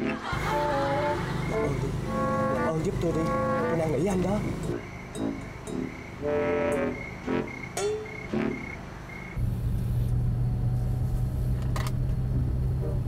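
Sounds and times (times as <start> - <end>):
background music: 0.0 - 8.8
car cabin hum: 0.3 - 5.4.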